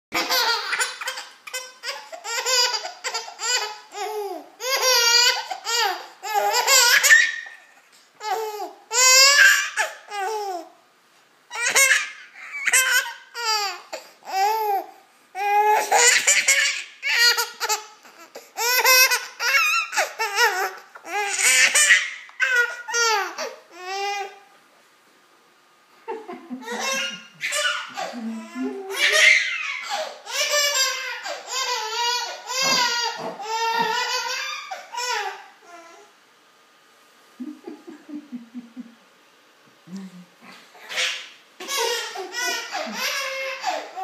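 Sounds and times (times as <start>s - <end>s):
baby laughing: 0.1s - 10.7s, 11.5s - 14.8s, 15.4s - 24.3s, 26.2s - 35.4s, 40.8s - 44.0s.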